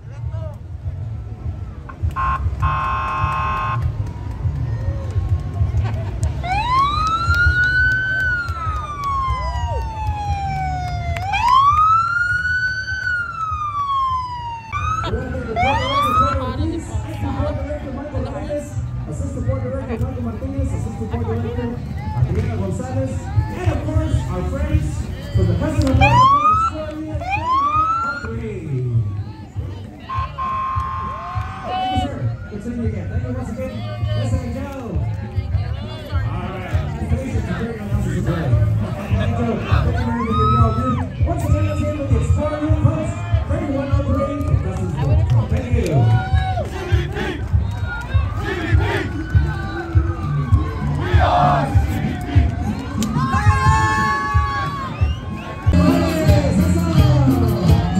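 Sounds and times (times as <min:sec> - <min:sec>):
vehicle siren wailing: 0:01.0 - 0:05.6, 0:06.4 - 0:17.4, 0:25.8 - 0:28.4, 0:30.1 - 0:34.0.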